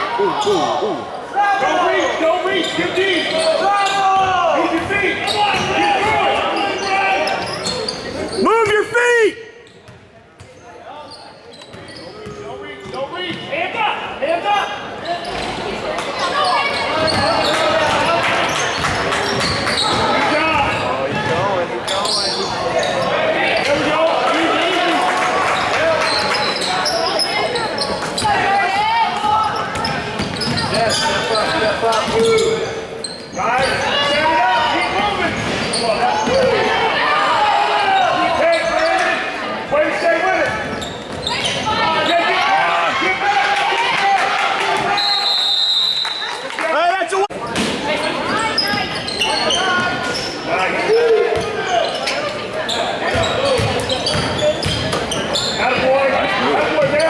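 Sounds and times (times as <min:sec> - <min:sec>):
voices of players and spectators: 0:00.0 - 0:57.0
sneaker squeaks: 0:02.0 - 0:08.8, 0:09.6 - 0:13.5, 0:14.6 - 0:23.9, 0:25.5 - 0:36.7, 0:37.9 - 0:39.3, 0:39.9 - 0:42.3, 0:47.4 - 0:57.0
referee's whistle: 0:44.9 - 0:46.4.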